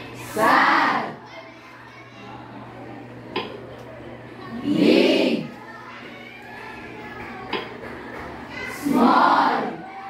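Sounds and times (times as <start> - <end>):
children murmuring and chattering: 0.0 - 10.0
children reading aloud in unison: 8.4 - 10.0.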